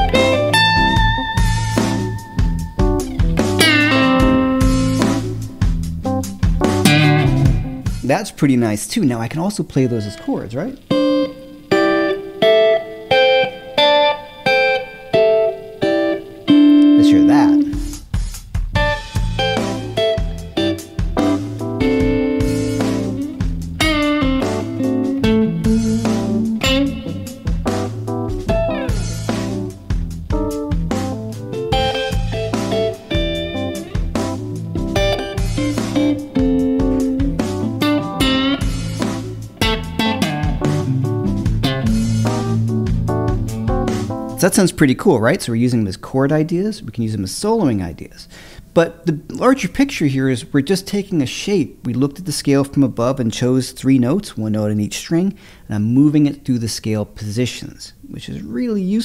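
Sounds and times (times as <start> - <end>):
electric guitar chords: 0.0 - 8.1, 9.8 - 18.1, 18.7 - 44.5
blues backing track with bass: 0.0 - 8.4, 9.6 - 45.6.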